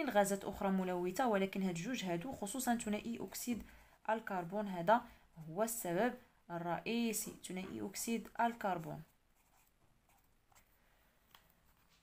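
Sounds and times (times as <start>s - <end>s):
pen scratching on paper: 8.7s - 10.7s.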